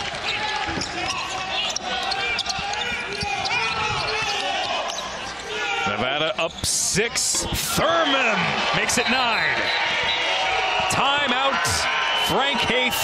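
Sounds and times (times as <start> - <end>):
arena crowd noise: 0.0 - 13.0
sneakers squeaking: 0.2 - 6.7.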